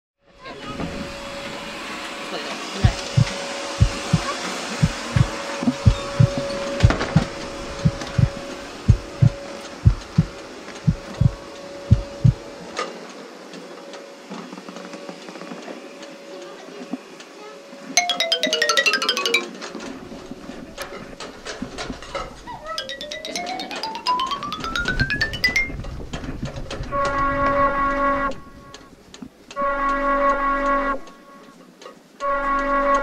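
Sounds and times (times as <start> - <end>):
heartbeat thumps: 2.8 - 12.4
steady hum and noise: 2.8 - 12.4.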